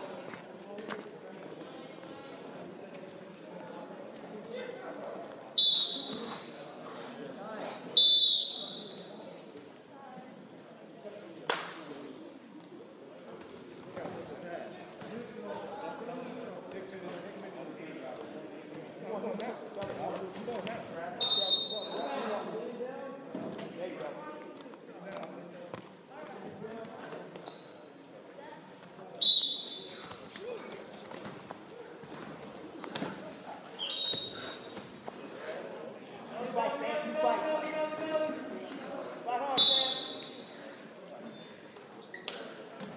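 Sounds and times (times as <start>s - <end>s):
echoing chatter of voices: 0.0s - 42.9s
shrill whistle blast: 39.6s - 40.4s.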